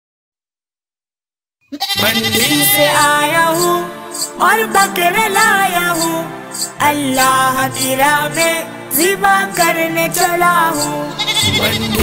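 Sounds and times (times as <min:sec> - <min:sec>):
goat bleating loudly: 0:01.7 - 0:03.0, 0:11.2 - 0:12.0.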